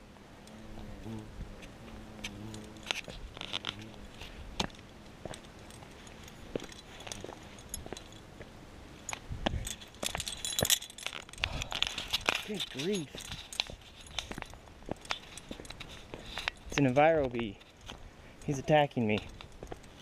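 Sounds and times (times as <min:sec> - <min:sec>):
bee buzzing: 0:00.3 - 0:08.2
gear-handling noise: 0:01.6 - 0:08.3, 0:09.0 - 0:20.0
metallic clinks of climbing gear: 0:02.0 - 0:08.4, 0:09.0 - 0:20.0.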